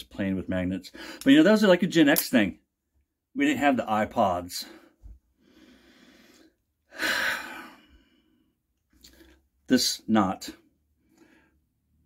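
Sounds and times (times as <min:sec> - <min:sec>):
man breathing: 0:00.9 - 0:01.3, 0:04.6 - 0:09.4, 0:11.0 - 0:11.8.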